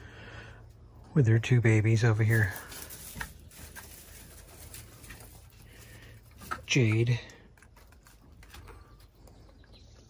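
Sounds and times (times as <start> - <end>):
goats rustling on hay: 1.9 - 6.8.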